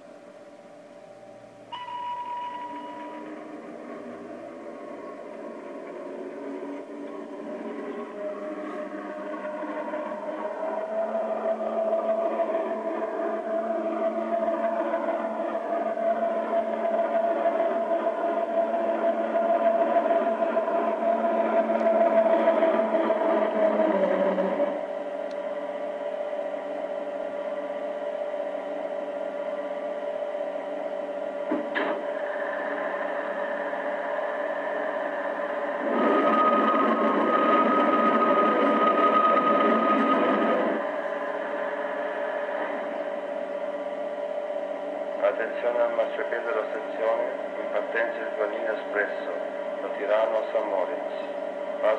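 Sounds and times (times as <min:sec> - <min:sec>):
electric train motor hum: 0:00.0 - 0:51.9
hissing hum with high tone: 0:00.0 - 0:51.9.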